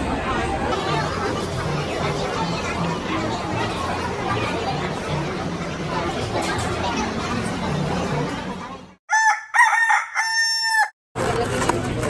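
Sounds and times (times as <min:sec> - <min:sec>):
crowd chatter: 0:00.0 - 0:09.0, 0:11.2 - 0:12.0
rooster crowing: 0:09.1 - 0:11.0.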